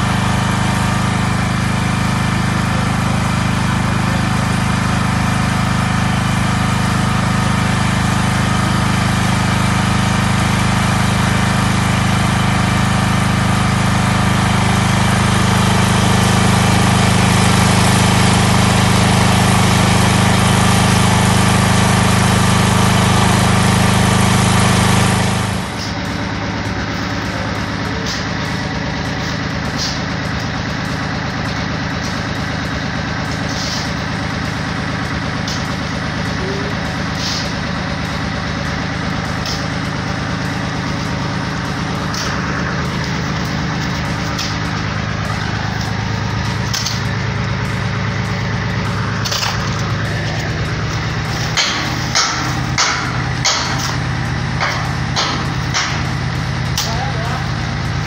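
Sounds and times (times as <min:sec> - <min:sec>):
engine running loudly: 0:00.0 - 0:58.0
quieter engine hum: 0:00.0 - 0:58.0
water gushing from pipe: 0:00.0 - 0:58.0.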